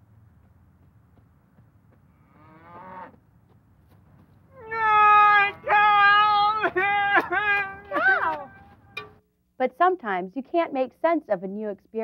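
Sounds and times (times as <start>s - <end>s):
cow mooing: 2.1s - 3.2s.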